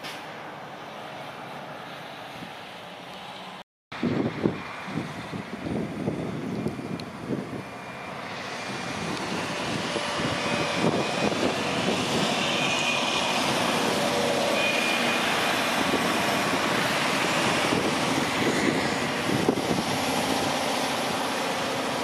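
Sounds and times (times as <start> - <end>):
heavy diesel equipment drone: 2.8 - 22.0.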